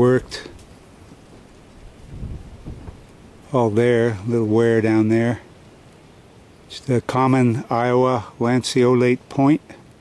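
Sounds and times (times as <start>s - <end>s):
wind buffeting microphone: 0.0s - 4.1s.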